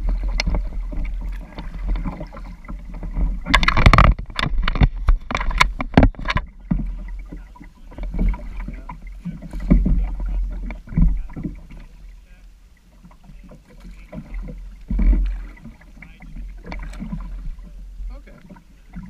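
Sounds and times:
low rumble with heavy thumps: 0:00.0 - 0:19.0
paddle strokes: 0:00.0 - 0:19.0
water sloshing against kayak: 0:00.0 - 0:19.0.

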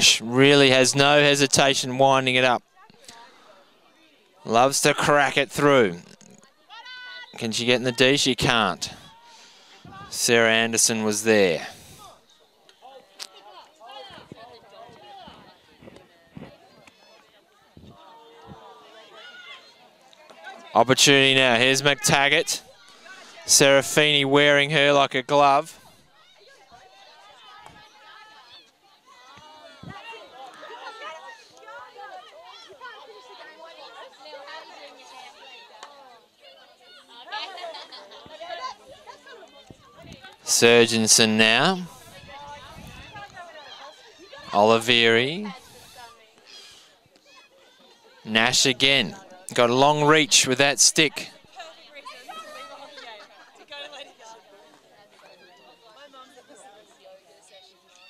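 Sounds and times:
players calling and shouting: 0:00.0 - 0:58.0.

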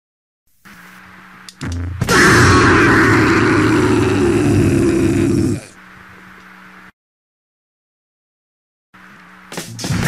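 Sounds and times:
faint amplifier hum: 0:00.5 - 0:02.1, 0:04.6 - 0:06.9
distorted punk music: 0:01.6 - 0:04.6.

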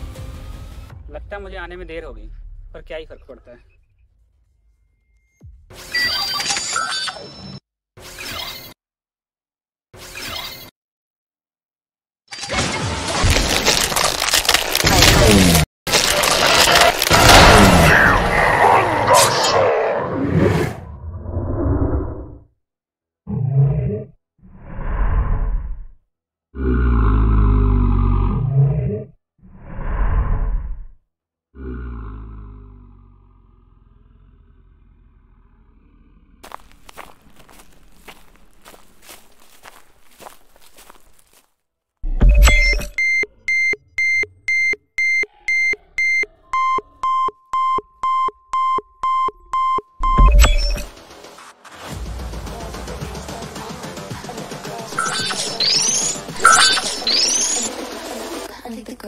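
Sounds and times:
monster growl: 0:17.0 - 0:22.4, 0:26.6 - 0:30.9, 0:31.6 - 0:36.5
deep monster roar: 0:17.1 - 0:22.4, 0:26.6 - 0:30.9, 0:31.5 - 0:36.4
short electronic beeps: 0:42.1 - 0:50.9, 0:54.9 - 0:57.7.

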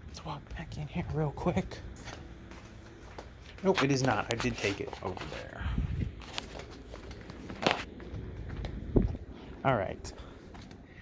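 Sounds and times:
flip-flop footsteps on concrete: 0:01.7 - 0:09.6.

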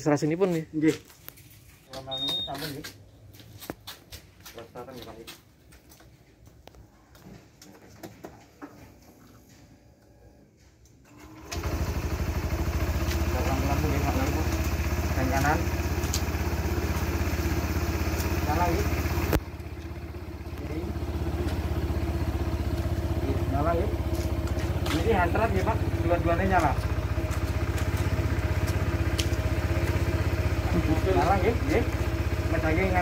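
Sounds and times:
scooter engine starting and idling: 0:09.0 - 0:33.0.

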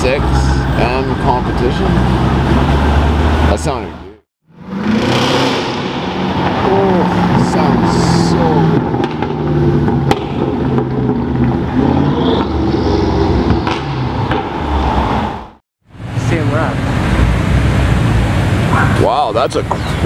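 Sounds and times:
people talking: 0:00.0 - 0:02.0, 0:03.5 - 0:04.2, 0:06.6 - 0:08.8, 0:16.2 - 0:16.8, 0:19.0 - 0:19.9
car engine low drone: 0:00.0 - 0:19.0.

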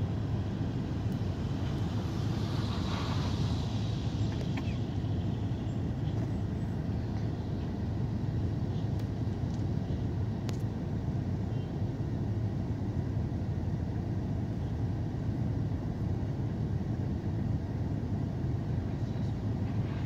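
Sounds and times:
bus engine idling: 0:00.0 - 0:20.0
traffic noise: 0:00.0 - 0:20.0.

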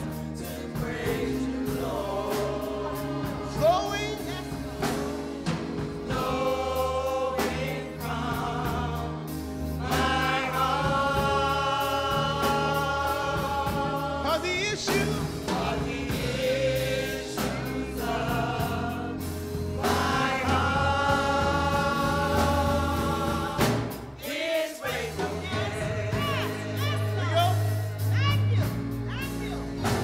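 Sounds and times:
group singing in harmony: 0:00.0 - 0:29.0
music accompaniment with low notes: 0:00.0 - 0:30.0.

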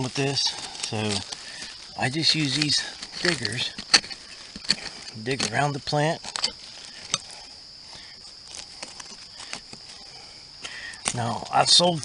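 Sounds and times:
high-pitched insect drone: 0:00.0 - 0:12.0
metal diggers scraping soil: 0:00.0 - 0:12.0.

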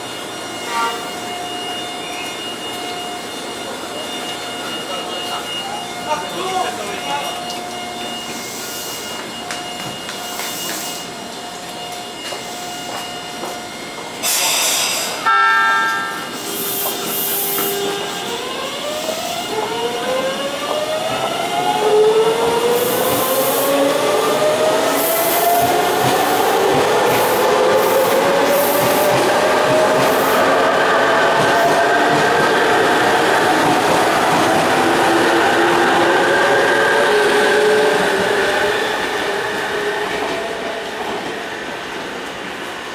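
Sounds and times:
rail noise: 0:00.0 - 0:42.9
train signal horn blast: 0:00.6 - 0:01.2, 0:15.2 - 0:18.2.

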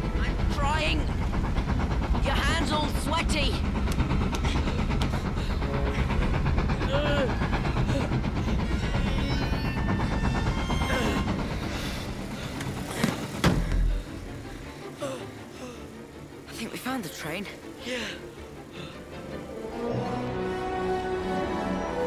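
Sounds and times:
orchestral music: 0:00.0 - 0:22.0
steam train rumble: 0:00.0 - 0:22.0.

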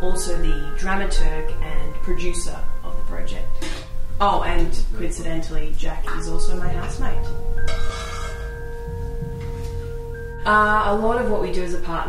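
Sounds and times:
ringing bell-like music notes: 0:06.1 - 0:11.8.

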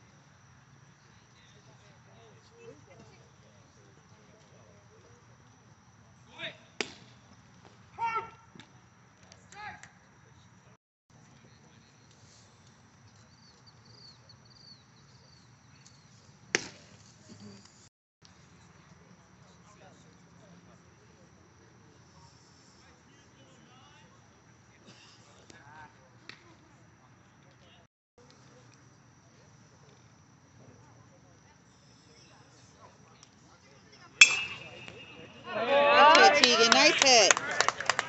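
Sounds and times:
metal bat hitting ball: 0:34.2 - 0:35.6.

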